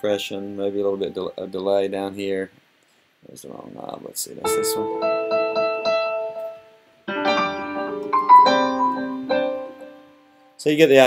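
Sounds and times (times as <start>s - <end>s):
piano chords and notes: 0.0s - 1.9s, 4.4s - 10.6s.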